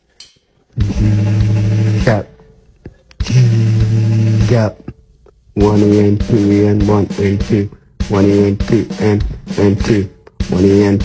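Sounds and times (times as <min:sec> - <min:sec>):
man buzzing snare roll imitation: 0:00.8 - 0:02.6, 0:03.2 - 0:05.0, 0:05.6 - 0:11.0.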